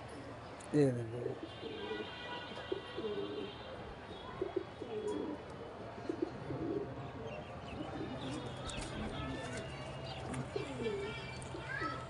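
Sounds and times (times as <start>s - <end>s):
pigeons cooing: 4.4s - 9.6s.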